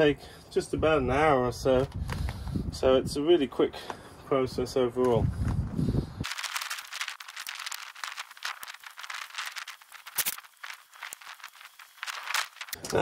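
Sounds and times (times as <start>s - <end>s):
hands crackling in potting compost: 6.2s - 13.0s.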